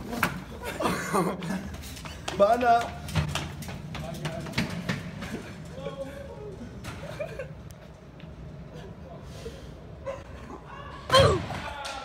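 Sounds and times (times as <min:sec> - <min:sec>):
running footsteps: 0:01.3 - 0:06.6
laundry cart rolling and rattling: 0:01.9 - 0:06.2.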